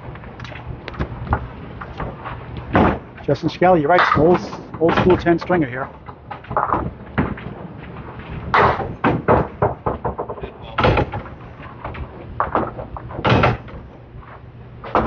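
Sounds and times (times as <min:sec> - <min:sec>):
bowling balls hitting pins: 0:00.5 - 0:15.0.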